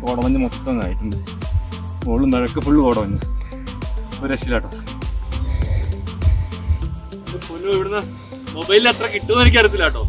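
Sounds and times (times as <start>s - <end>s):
insects chirring: 0.0s - 10.0s.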